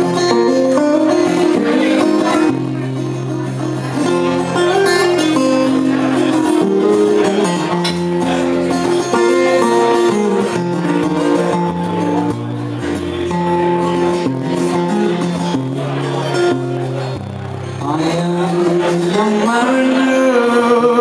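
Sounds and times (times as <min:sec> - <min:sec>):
acoustic guitar playing: 0:00.0 - 0:21.0.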